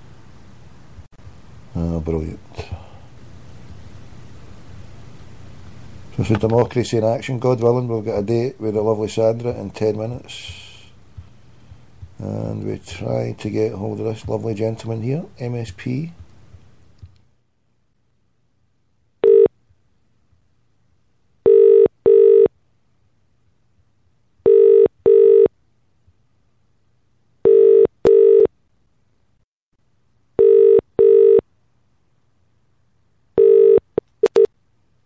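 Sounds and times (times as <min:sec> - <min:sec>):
telephone ringing tone: 0:19.2 - 0:19.5, 0:21.4 - 0:22.5, 0:24.4 - 0:25.5, 0:27.4 - 0:28.5, 0:30.4 - 0:31.4, 0:33.4 - 0:34.5.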